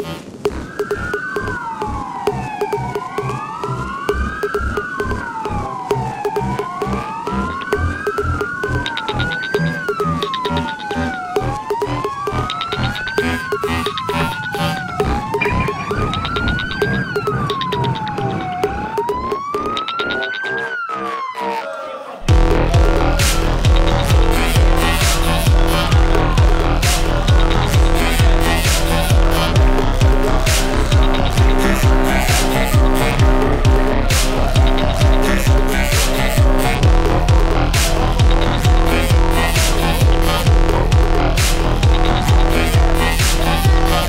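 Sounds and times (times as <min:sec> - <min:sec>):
emergency vehicle siren wailing: 0:00.0 - 0:44.0.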